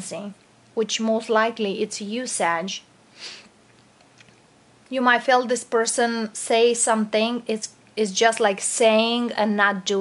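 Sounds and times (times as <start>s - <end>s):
woman speaking: 0.0s - 2.9s, 4.9s - 10.0s
woman breathing in: 3.1s - 3.5s.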